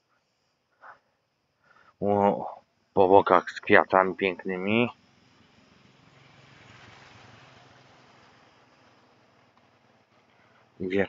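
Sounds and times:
small motorbike passing: 0:04.4 - 0:10.8.

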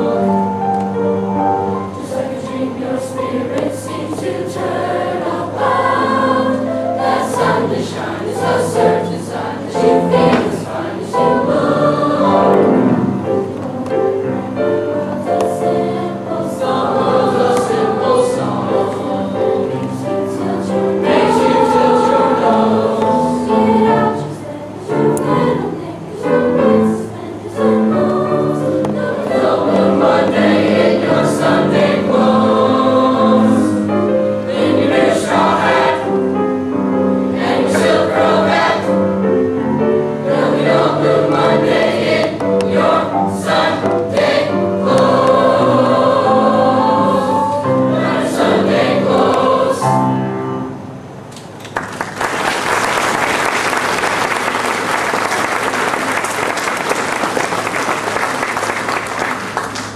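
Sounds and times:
choir singing with accompaniment: 0:00.0 - 0:51.3
audience applauding: 0:51.6 - 0:59.9.

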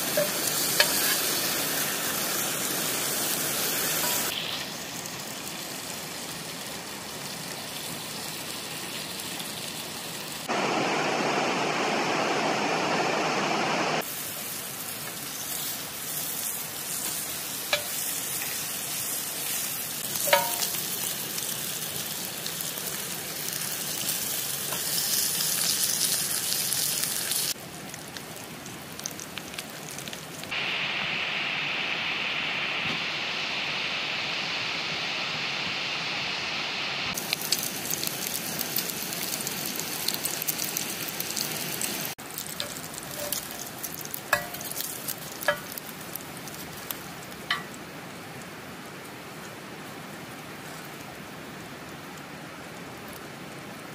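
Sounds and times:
bacon sizzling in a pan: 0:00.0 - 0:10.5, 0:14.0 - 0:30.6, 0:37.2 - 0:47.9.

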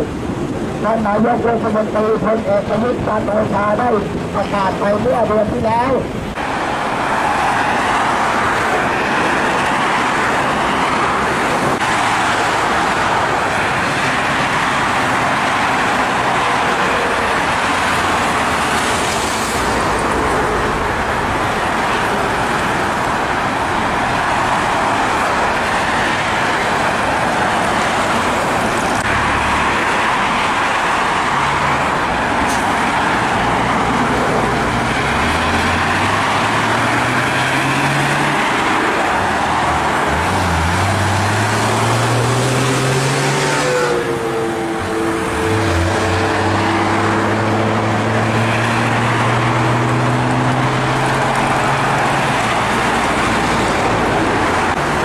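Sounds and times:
highway traffic: 0:00.0 - 0:55.0.

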